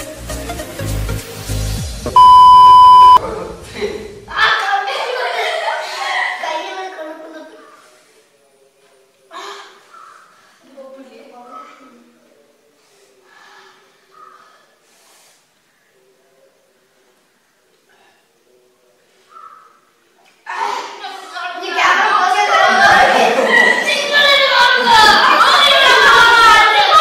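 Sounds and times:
steady test tone beep: 2.1s - 3.2s.

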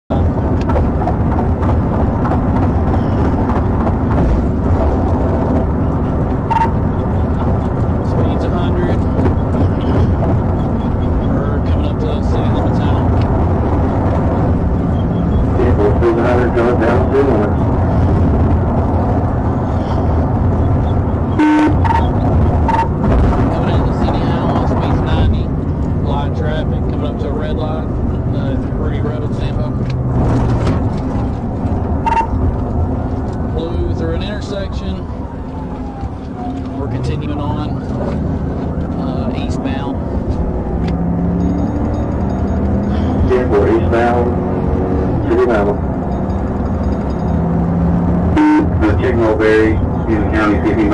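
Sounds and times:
car engine tyres and wind rush: 0.1s - 50.9s.

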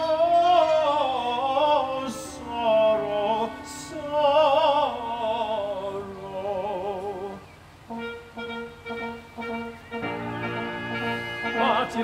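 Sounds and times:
small orchestra playing: 0.4s - 6.7s, 7.9s - 12.0s.

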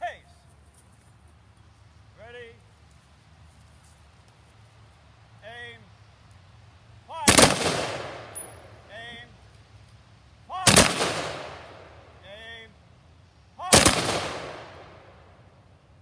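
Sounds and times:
shouted command: 7.1s - 7.4s, 10.4s - 10.8s, 13.6s - 13.9s
rifle volleys echoing: 7.1s - 12.7s, 13.6s - 15.6s.

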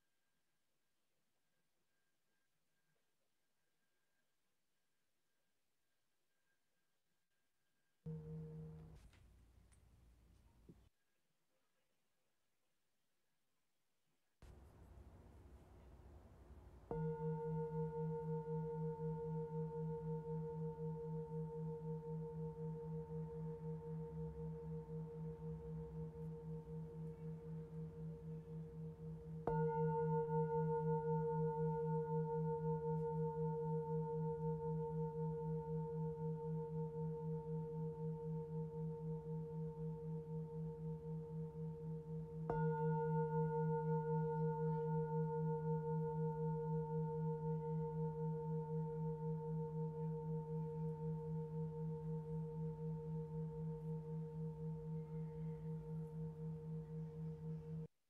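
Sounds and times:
singing bowl ringing: 8.1s - 9.0s, 16.9s - 57.9s.

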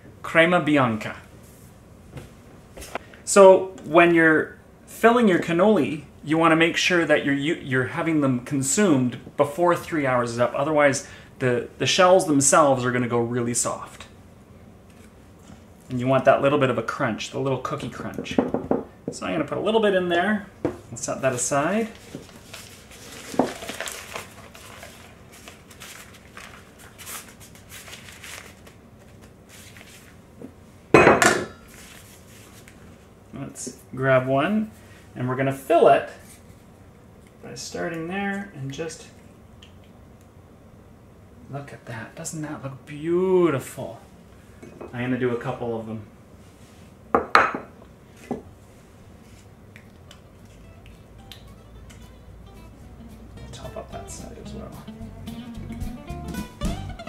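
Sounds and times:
piping bag rustling: 21.2s - 30.2s.

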